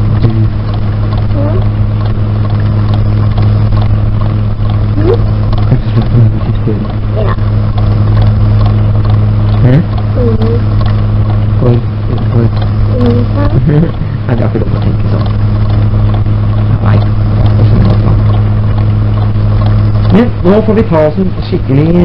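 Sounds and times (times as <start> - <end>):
tape hum and hiss: 0.0 - 22.0.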